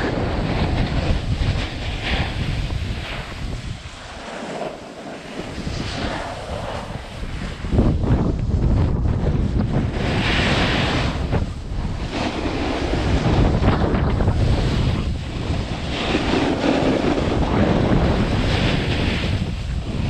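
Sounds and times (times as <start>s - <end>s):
skis sliding on snow: 0.0s - 20.0s
wind buffeting microphone: 0.0s - 20.0s.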